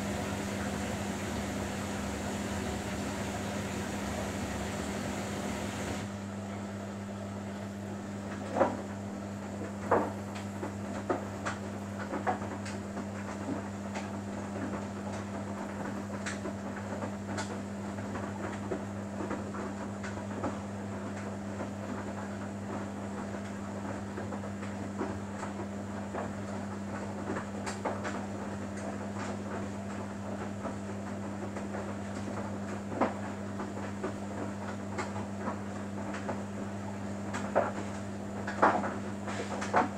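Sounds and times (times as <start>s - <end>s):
washing machine drum humming: 0.0s - 6.2s.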